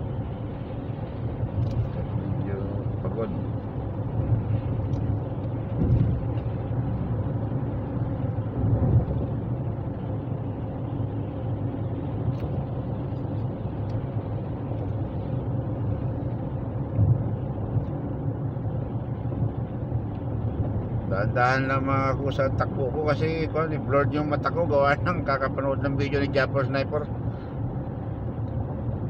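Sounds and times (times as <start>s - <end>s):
road and engine rumble in car: 0.0s - 29.0s.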